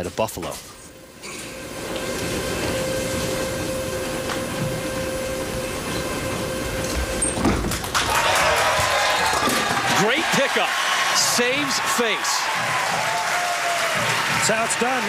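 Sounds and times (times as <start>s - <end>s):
arena crowd hum: 0.9s - 15.0s
crowd cheering and clapping: 7.6s - 15.0s.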